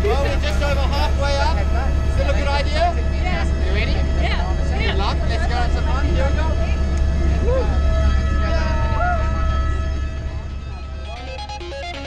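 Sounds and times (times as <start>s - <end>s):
helicopter cabin rumble: 0.0s - 12.0s
music: 6.5s - 12.0s.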